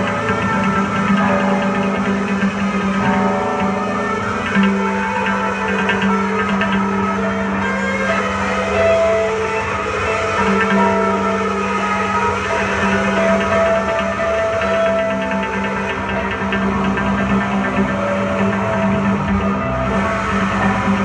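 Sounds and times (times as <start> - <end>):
noise-rock on electric guitars: 0.0 - 21.0.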